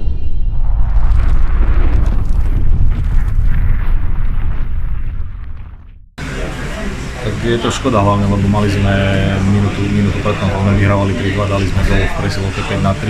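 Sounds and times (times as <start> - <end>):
deep cinematic rumble: 0.0 - 6.3.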